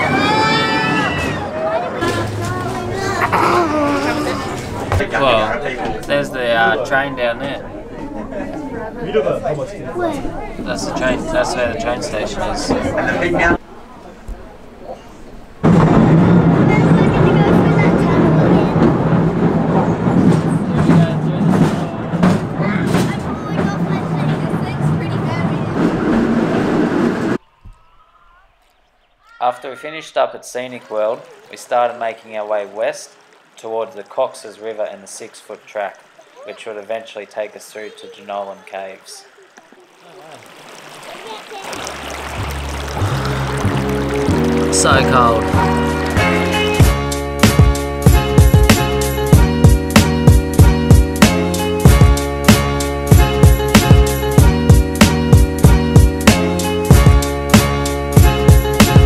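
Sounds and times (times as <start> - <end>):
railway carriage rumble and rattle: 15.6 - 27.4
river water running and splashing: 28.5 - 59.0
background music with steady beat: 43.6 - 59.0.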